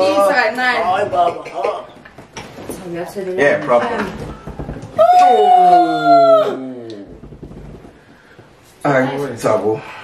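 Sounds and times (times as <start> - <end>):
people crying out: 5.0 - 7.1.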